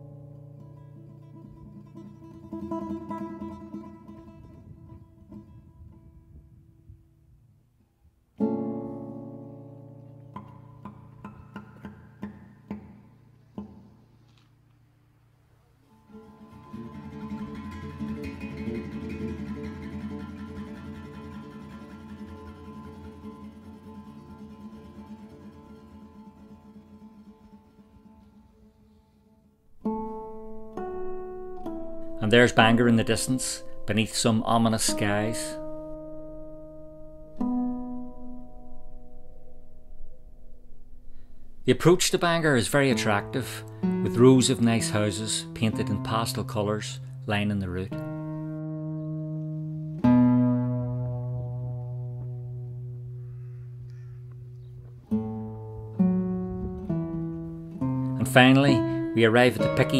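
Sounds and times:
solo acoustic guitar: 0.0s - 59.9s.

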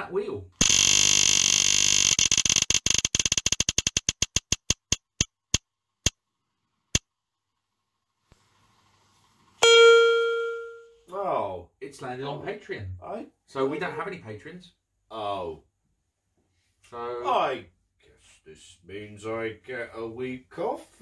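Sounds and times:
spinner wheel ticking: 1.5s - 5.6s
ringing chime: 9.6s - 11.0s.

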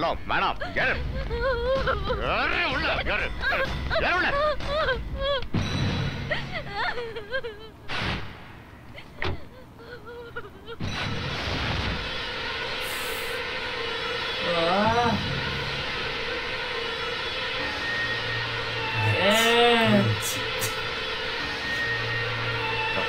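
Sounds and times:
film score drone: 0.0s - 23.0s.

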